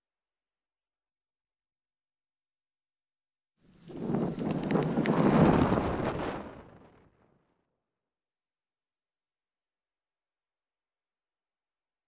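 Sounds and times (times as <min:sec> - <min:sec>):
wind noise on microphone: 0:03.7 - 0:07.4.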